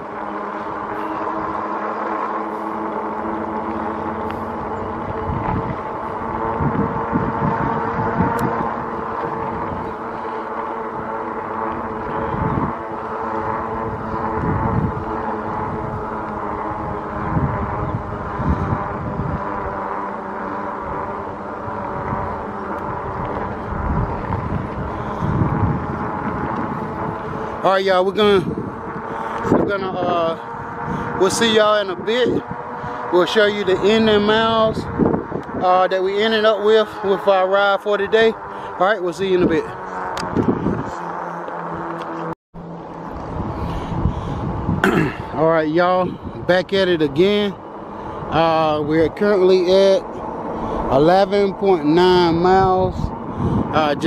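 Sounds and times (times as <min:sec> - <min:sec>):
electric bike motor whining: 0:00.0 - 0:54.0
wind buffeting microphone: 0:00.0 - 0:54.0.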